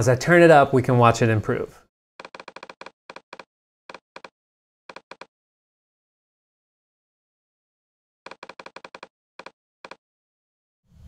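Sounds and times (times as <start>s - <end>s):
computer mouse clicking: 2.2s - 4.3s, 4.9s - 5.3s, 8.3s - 10.0s.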